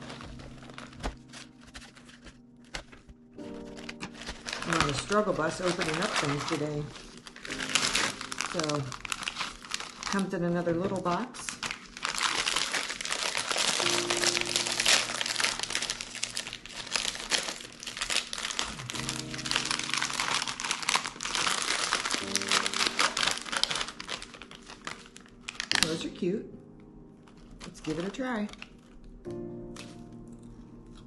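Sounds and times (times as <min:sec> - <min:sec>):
background music: 0:00.0 - 0:31.0
foil gift wrap crinkling: 0:00.0 - 0:31.0.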